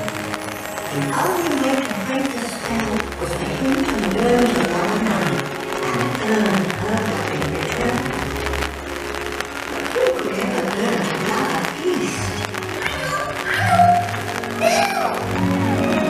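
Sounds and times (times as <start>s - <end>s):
music over loudspeakers: 0.0s - 16.0s
voice over music: 0.0s - 16.0s.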